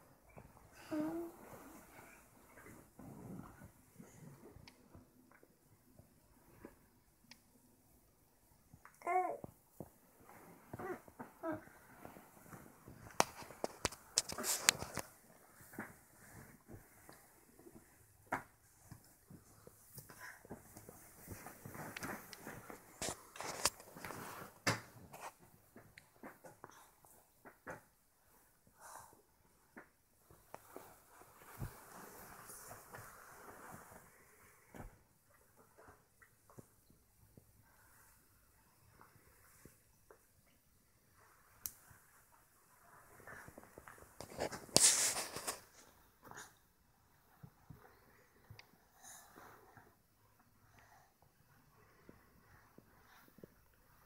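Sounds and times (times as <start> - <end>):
bedding rustling: 9.9 - 26.4, 30.2 - 36.8.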